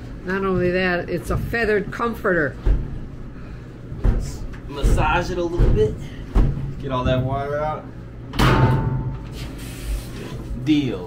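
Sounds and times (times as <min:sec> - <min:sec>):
washing machine lid banging shut: 0:08.3 - 0:09.2.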